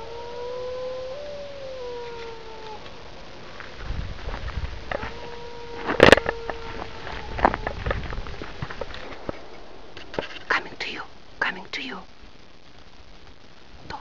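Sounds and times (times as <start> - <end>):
wolf howl: 0.0 - 2.9, 4.4 - 8.2.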